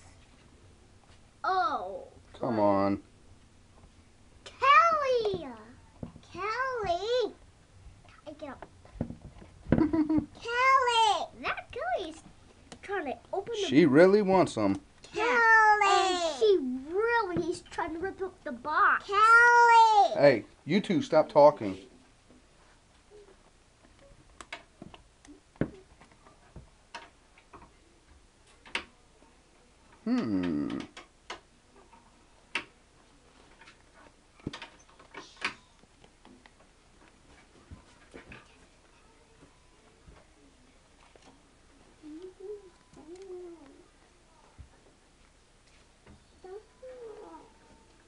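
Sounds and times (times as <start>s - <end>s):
child calling out: 15.2s - 16.6s
rustles: 21.6s - 48.0s.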